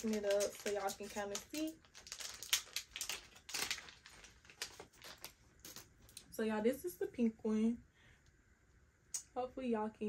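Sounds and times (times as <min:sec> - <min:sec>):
packaging snapping: 0:00.0 - 0:06.2
packet crinkling: 0:00.0 - 0:06.2.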